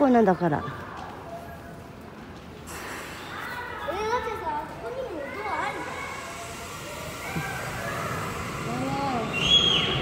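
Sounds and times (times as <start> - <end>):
station background noise: 4.2 - 10.0.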